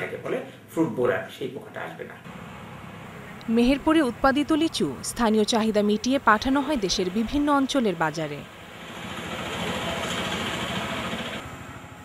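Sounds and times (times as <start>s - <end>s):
steady engine hum: 2.3s - 12.0s.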